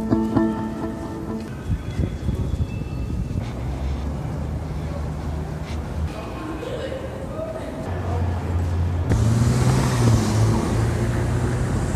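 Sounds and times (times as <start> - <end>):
street noise: 0.0 - 11.9
vehicle engine drone: 3.3 - 6.4, 7.9 - 11.9.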